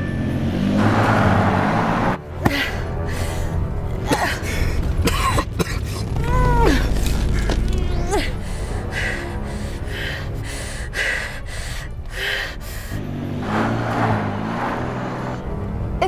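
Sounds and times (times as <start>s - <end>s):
low dark film score: 0.0s - 16.0s
woman moaning: 6.1s - 8.4s.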